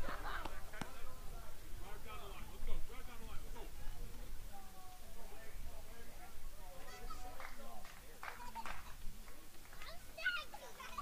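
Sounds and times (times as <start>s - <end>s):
indistinct chatter of voices: 0.0s - 11.0s
low background noise: 0.0s - 11.0s.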